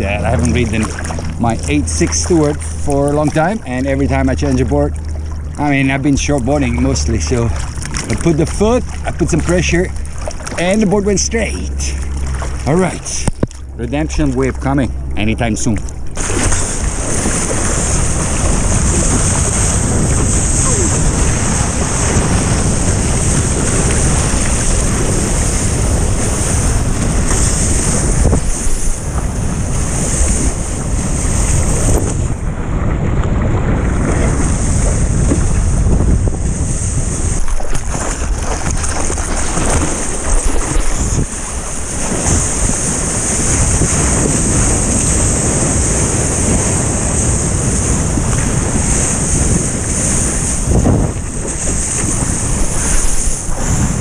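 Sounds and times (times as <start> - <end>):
ocean water rushing and splashing: 0.0 - 54.0
wind buffeting microphone: 0.0 - 54.0.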